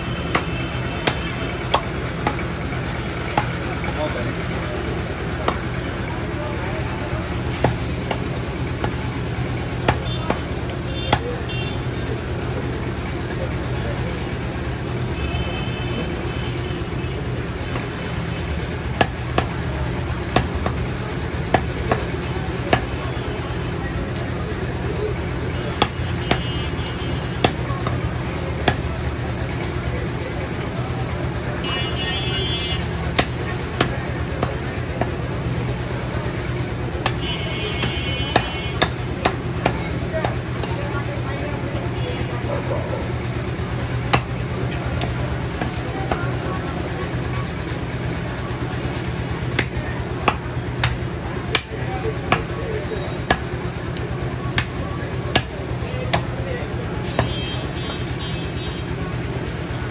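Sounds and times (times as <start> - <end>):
market and traffic hum: 0.0 - 59.9
knife chopping meat on wood: 9.8 - 11.3, 19.0 - 19.6, 20.3 - 22.1, 33.1 - 35.1, 37.8 - 40.4, 49.5 - 51.0, 54.5 - 55.5, 56.1 - 56.3.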